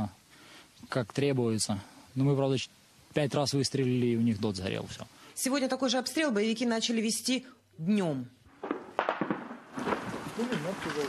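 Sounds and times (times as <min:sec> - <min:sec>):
man talking: 0:00.8 - 0:05.1, 0:10.4 - 0:11.0
machine-gun fire: 0:08.6 - 0:11.0.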